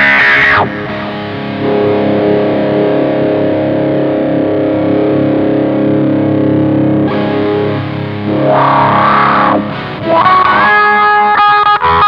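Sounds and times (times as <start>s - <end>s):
fuzz wah electric guitar: 0.0s - 12.0s.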